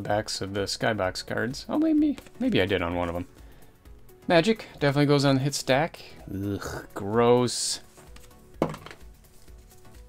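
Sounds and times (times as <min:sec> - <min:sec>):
faint background music: 0:00.0 - 0:10.0
cards being handled: 0:01.9 - 0:02.5, 0:07.8 - 0:10.0.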